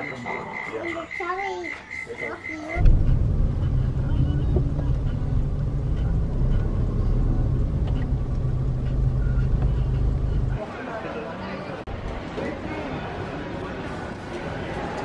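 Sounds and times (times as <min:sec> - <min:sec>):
loud low street rumble: 0:02.7 - 0:15.0.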